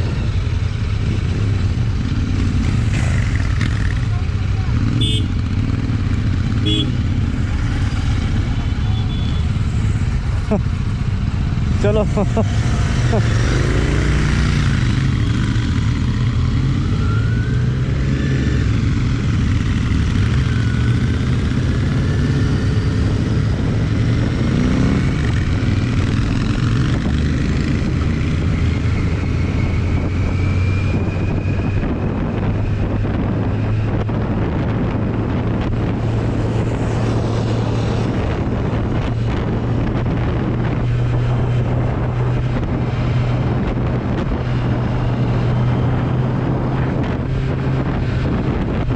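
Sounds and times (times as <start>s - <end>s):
motorcycle engine running: 0.0s - 17.0s
wind rushing over microphone: 0.0s - 48.9s.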